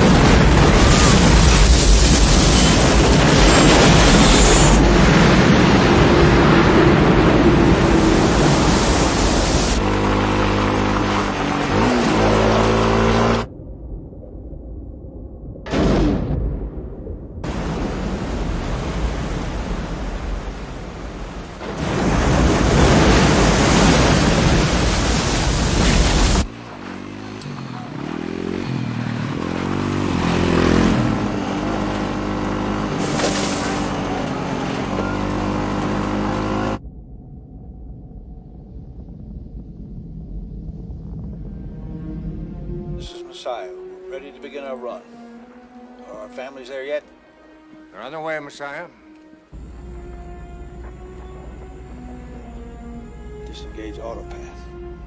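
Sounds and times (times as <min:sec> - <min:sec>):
rushing roar of water: 0:00.0 - 0:13.5, 0:17.4 - 0:27.2
orchestral music: 0:41.7 - 0:55.0.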